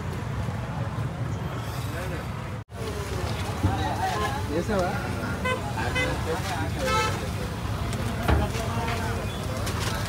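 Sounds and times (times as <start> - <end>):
traffic noise: 0.0 - 10.0
vehicle horns honking: 5.4 - 7.3.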